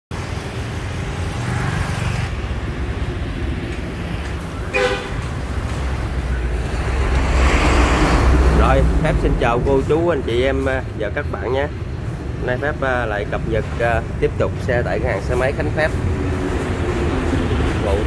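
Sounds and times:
road traffic rumble: 0.1 - 18.0
vehicle horn toot: 4.7 - 5.2.

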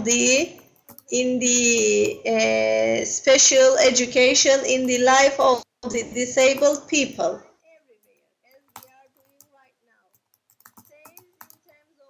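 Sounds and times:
computer keyboard typing: 0.2 - 2.5, 4.2 - 7.4, 8.0 - 12.0.

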